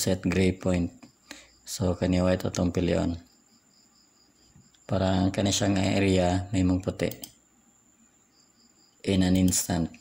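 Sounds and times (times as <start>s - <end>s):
person speaking: 0.0s - 1.1s, 1.7s - 3.3s, 4.9s - 7.4s, 9.0s - 10.0s.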